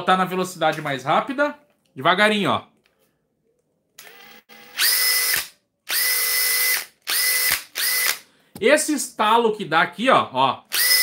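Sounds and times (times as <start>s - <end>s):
cordless drill motor whining: 4.0s - 8.2s, 10.7s - 11.0s.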